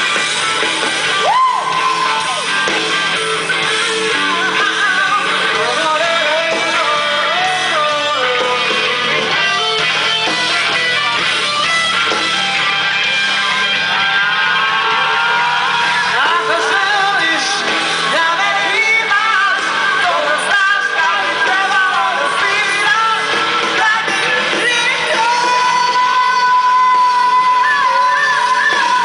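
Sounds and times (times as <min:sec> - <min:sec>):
distorted electric guitar: 0:00.0 - 0:29.0
rock band playing live: 0:00.0 - 0:29.0
person singing: 0:03.2 - 0:10.2, 0:15.8 - 0:29.0.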